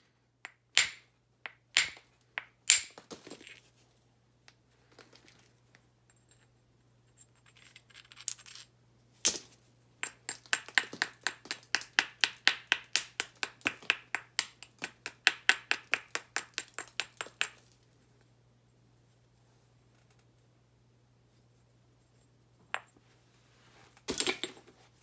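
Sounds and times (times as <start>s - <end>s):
hammerstone tapping stone: 0.5s - 3.0s, 10.0s - 17.6s.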